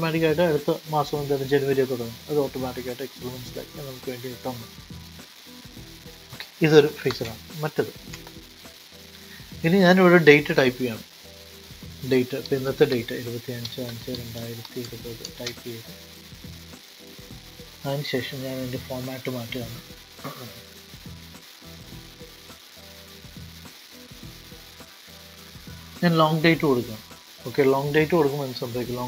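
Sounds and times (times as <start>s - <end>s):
steady background hiss: 0.0s - 29.0s.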